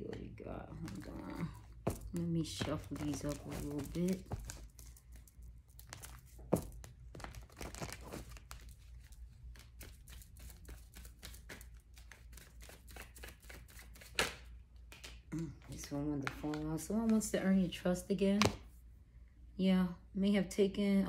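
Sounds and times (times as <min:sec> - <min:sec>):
cards being shuffled: 0:00.7 - 0:17.4.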